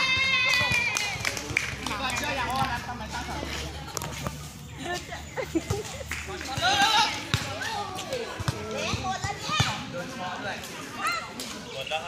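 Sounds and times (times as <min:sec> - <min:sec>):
players shouting: 0:00.0 - 0:02.6, 0:06.3 - 0:09.9
volleyball thudding: 0:06.5 - 0:09.8.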